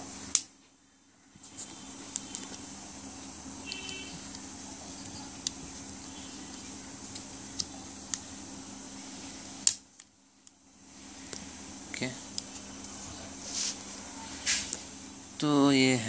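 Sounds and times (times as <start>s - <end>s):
low background hum: 0.0s - 16.0s.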